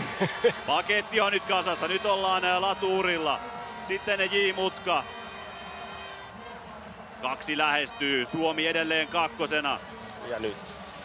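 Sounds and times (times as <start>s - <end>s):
stadium crowd hum: 0.0s - 11.0s.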